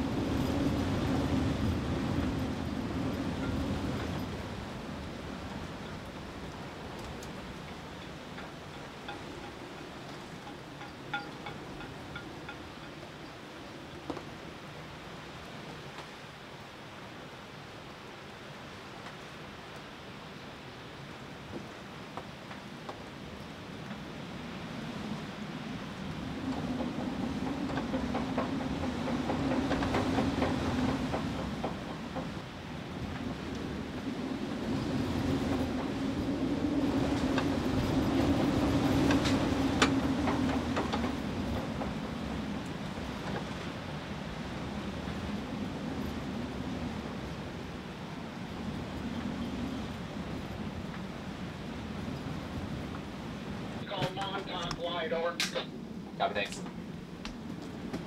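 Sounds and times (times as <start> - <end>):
wind gusting: 0.0 - 58.0.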